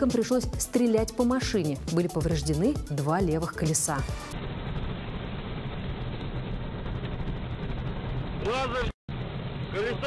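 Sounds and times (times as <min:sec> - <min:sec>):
car engine and road noise: 0:04.1 - 0:10.0.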